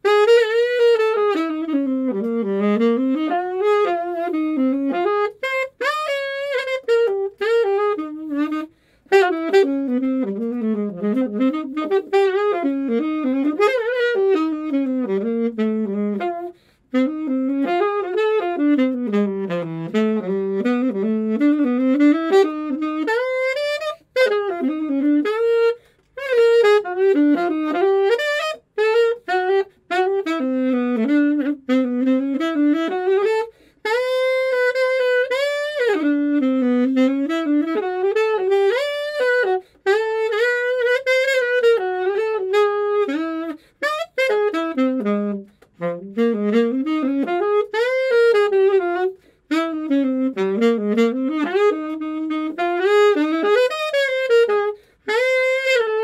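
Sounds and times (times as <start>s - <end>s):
alto saxophone jazz melody: 0.0s - 56.0s.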